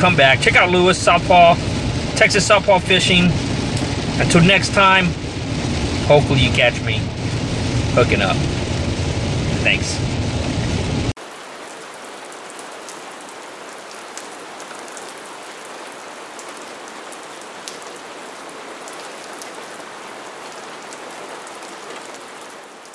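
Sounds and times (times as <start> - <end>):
steady rain: 0.0 - 22.9.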